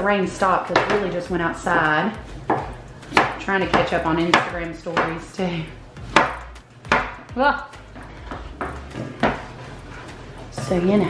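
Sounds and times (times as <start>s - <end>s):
knife chopping on wooden board: 0.7s - 1.1s, 2.4s - 5.2s, 6.0s - 7.3s, 8.0s - 9.5s.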